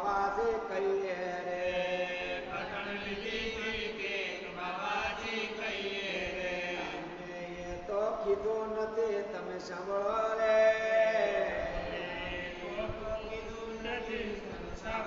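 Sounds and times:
voices chanting: 1.5s - 7.2s.

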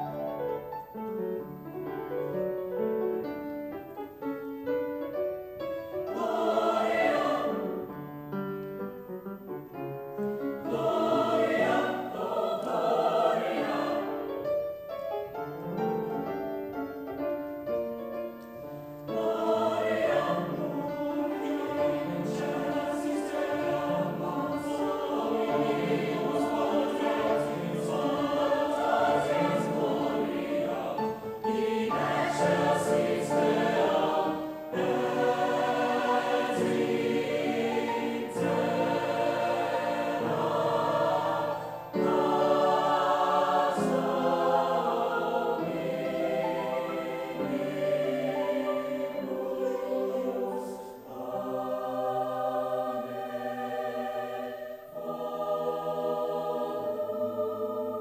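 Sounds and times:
piano accompaniment: 0.0s - 58.0s
mixed choir singing: 5.5s - 8.4s, 10.4s - 17.2s, 18.7s - 58.0s.

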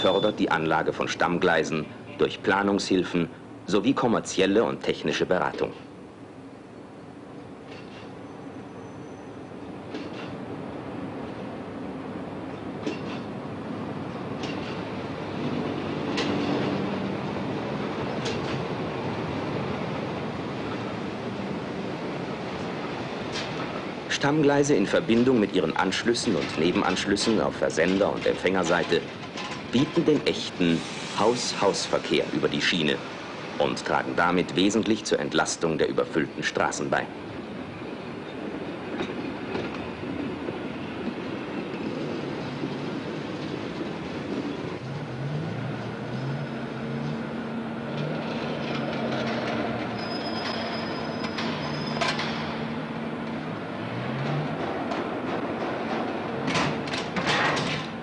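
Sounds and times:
diesel locomotive running on rails: 0.0s - 58.0s.

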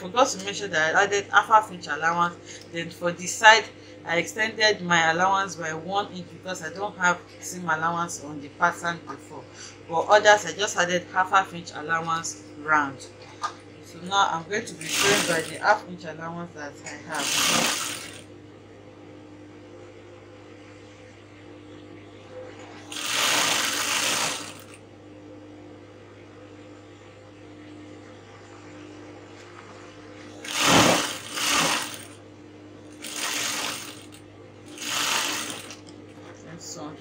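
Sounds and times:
steady low hum: 0.0s - 37.0s
sewing machine stitching: 14.8s - 15.6s, 17.2s - 18.2s, 22.9s - 24.8s, 30.4s - 32.2s, 33.0s - 35.9s.

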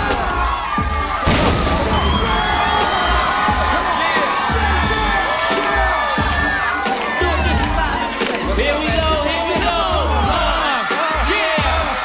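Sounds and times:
crowd cheering and screaming: 0.0s - 12.0s
music with heavy bass beat: 0.0s - 12.0s.

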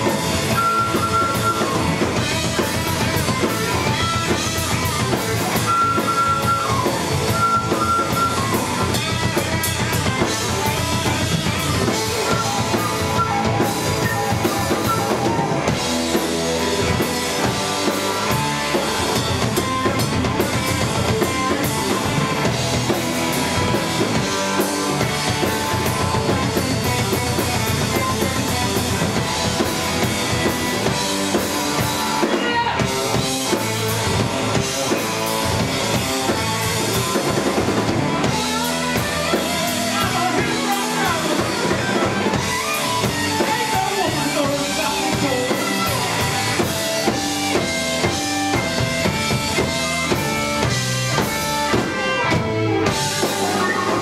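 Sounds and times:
rock band playing: 0.0s - 54.0s
flute high notes: 0.5s - 2.2s, 5.4s - 9.0s, 11.9s - 15.9s.

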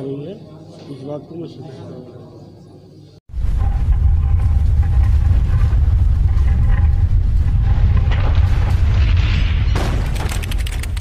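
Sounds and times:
deep rumble: 3.3s - 11.0s.

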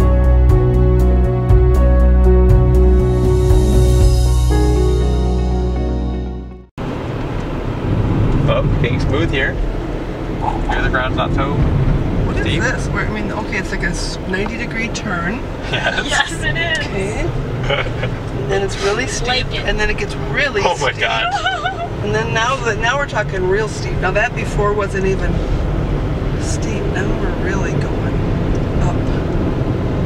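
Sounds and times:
car engine and road rumble: 6.8s - 30.0s
people talking: 8.5s - 9.6s, 10.4s - 11.6s, 12.3s - 25.4s, 26.4s - 28.2s, 28.8s - 29.2s.

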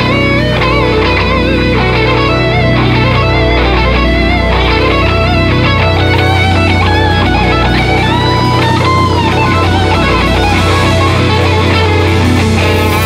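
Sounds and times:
blues-rock band instrumental: 0.0s - 13.0s
electric guitar bending notes: 0.0s - 13.0s.

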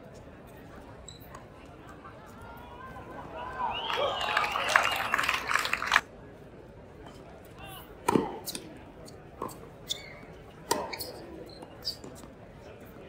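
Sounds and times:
crowd voices: 0.0s - 13.0s
crowd clapping: 3.6s - 6.1s
racket hitting tennis ball: 8.0s - 8.7s, 10.6s - 11.2s.

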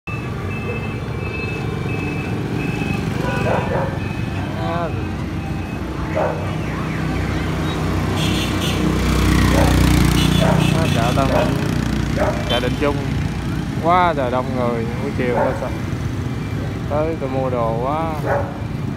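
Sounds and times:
motorbike engines running: 0.1s - 18.9s
three-wheeler engine approaching: 0.1s - 18.9s
people's voices: 3.4s - 5.4s, 10.4s - 13.2s.

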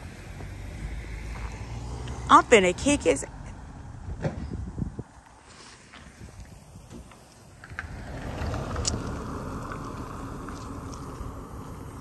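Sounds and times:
car driving along street: 0.0s - 12.0s.

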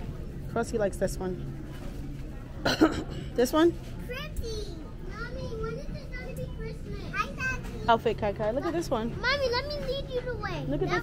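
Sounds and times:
young children chattering: 4.0s - 11.0s.

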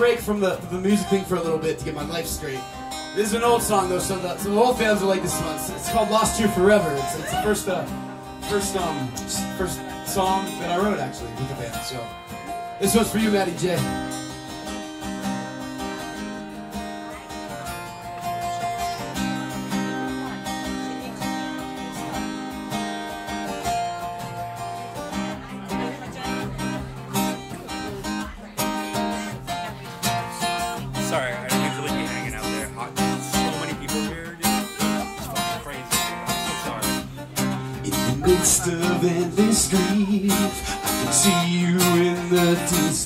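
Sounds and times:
acoustic guitar playing: 0.0s - 43.0s.

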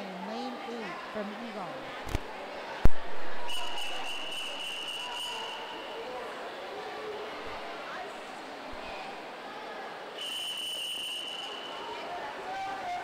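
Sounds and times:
crowd chatter: 0.0s - 13.0s
long high whistle blast: 3.5s - 6.0s, 10.2s - 13.0s.

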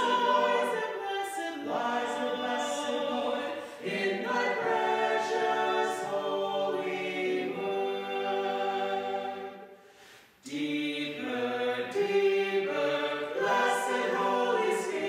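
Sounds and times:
mixed choir singing: 0.0s - 9.8s, 10.4s - 15.0s.

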